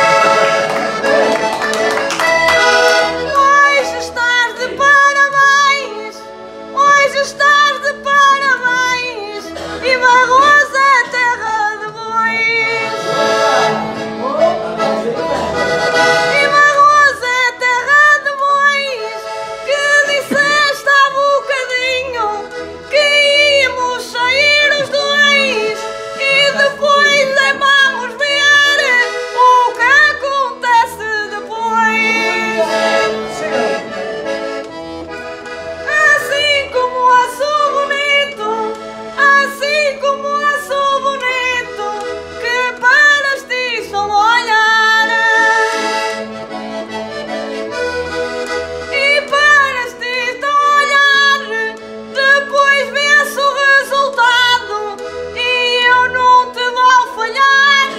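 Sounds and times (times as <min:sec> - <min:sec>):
concertina melody: 0:00.0 - 0:57.9.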